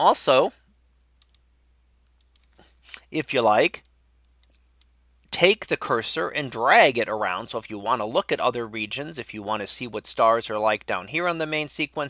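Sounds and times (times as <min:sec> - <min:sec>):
sharp clicks: 0:01.2 - 0:03.1.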